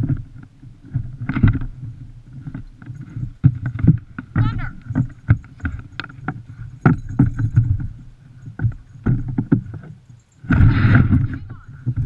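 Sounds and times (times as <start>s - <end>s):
sled frame knocking and creaking: 0.0s - 12.0s.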